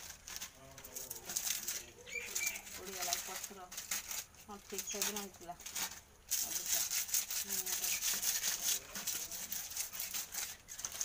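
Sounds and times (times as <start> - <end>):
crackles and rustles: 0.0 - 11.0
bird chirps: 2.0 - 2.7.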